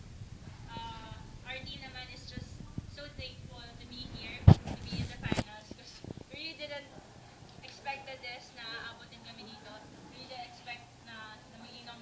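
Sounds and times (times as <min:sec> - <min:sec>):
low room rumble: 0:00.0 - 0:12.0
person talking: 0:00.7 - 0:07.0.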